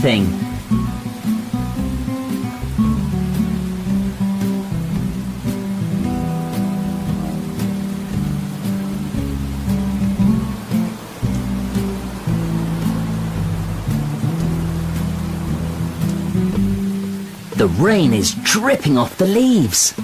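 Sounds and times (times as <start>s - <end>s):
falling rain hiss: 0.0s - 20.0s
gentle guitar and bass music: 0.0s - 20.0s.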